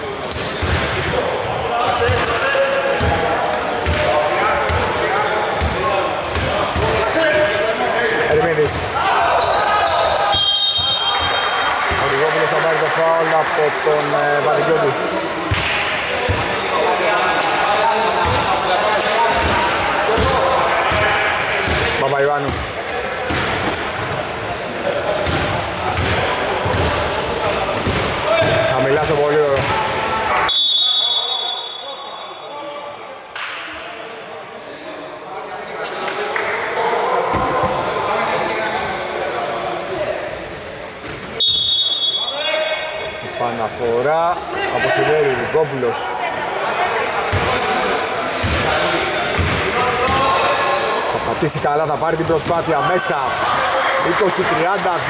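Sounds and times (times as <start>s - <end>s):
players calling out: 0.0s - 34.6s
basketball bouncing on indoor court: 0.2s - 2.4s, 3.0s - 7.1s, 19.3s - 24.2s, 25.1s - 29.8s, 48.4s - 50.4s
short high whistle: 30.5s - 32.4s, 41.4s - 42.4s.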